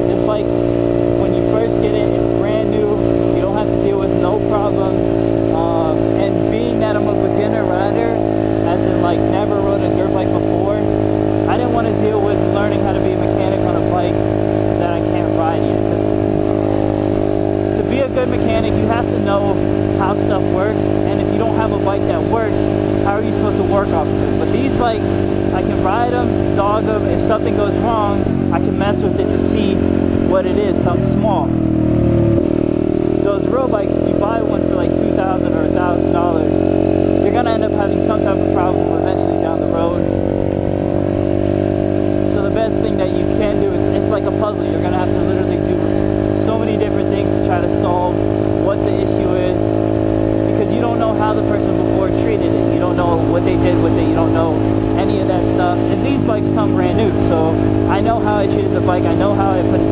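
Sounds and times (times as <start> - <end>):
dirt bike engine running: 0.0 - 59.9.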